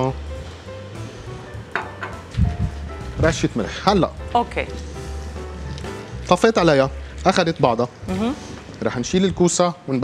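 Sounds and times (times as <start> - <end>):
soft background music with bass: 0.0 - 10.0.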